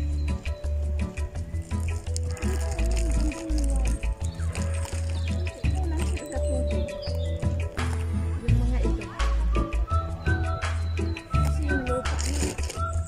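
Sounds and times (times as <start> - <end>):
faint music with held notes: 0.0 - 13.0.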